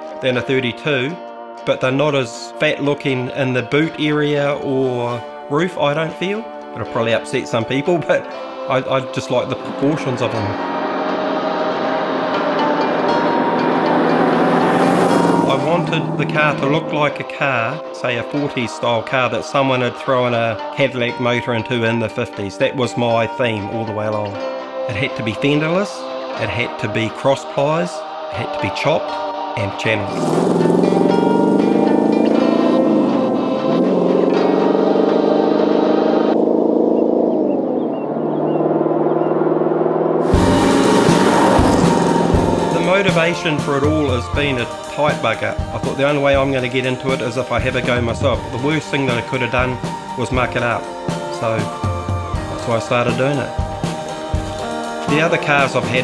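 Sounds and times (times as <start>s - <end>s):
music of sustained chords: 0.0s - 56.0s
road noise: 9.5s - 18.0s, 30.0s - 45.9s, 47.4s - 52.6s
car engine driving past: 10.1s - 17.8s, 30.1s - 43.9s.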